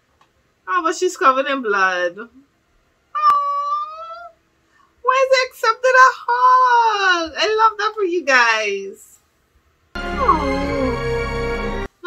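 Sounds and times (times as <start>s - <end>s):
woman's high-pitched wordless vocals: 3.2s - 4.4s, 5.1s - 9.0s.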